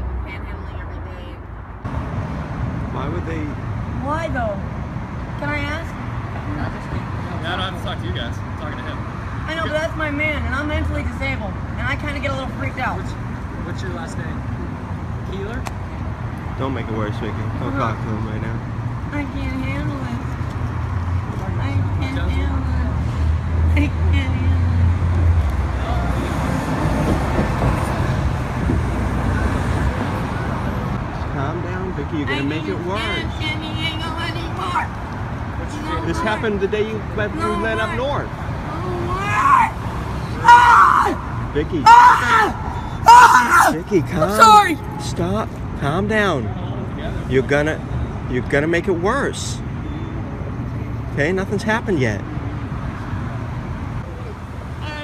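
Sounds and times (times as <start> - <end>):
road traffic rumble: 0.0 - 55.0
vehicle engine hum: 0.0 - 55.0.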